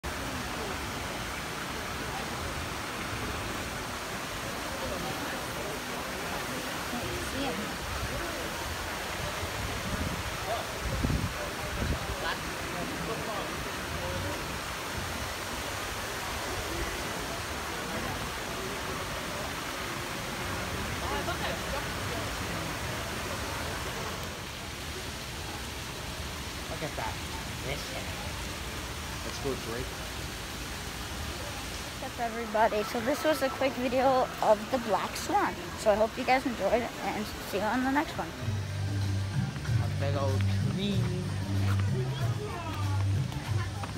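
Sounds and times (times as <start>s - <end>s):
faint voices: 0.0s - 43.9s
running water rushing: 0.0s - 43.9s.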